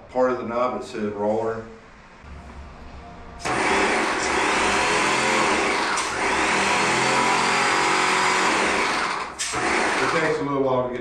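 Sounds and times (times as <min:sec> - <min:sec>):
paint sprayer pump running: 0:03.4 - 0:10.4.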